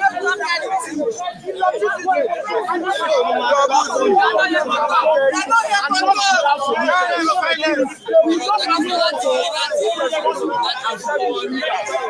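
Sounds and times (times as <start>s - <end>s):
men talking and shouting: 0.0s - 12.0s.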